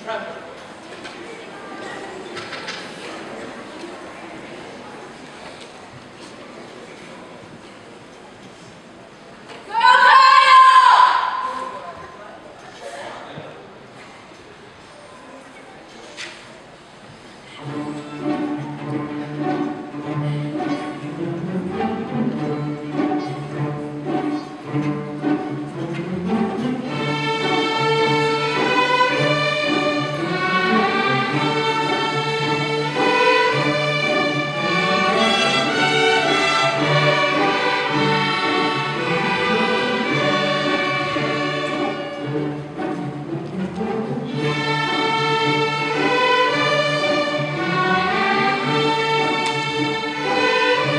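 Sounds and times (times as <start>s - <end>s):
string orchestra playing: 17.2s - 50.9s.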